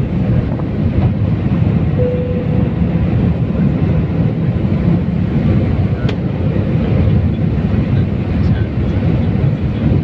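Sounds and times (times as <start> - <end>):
jet engines roaring: 0.0 - 10.0
rushing air: 0.0 - 10.0.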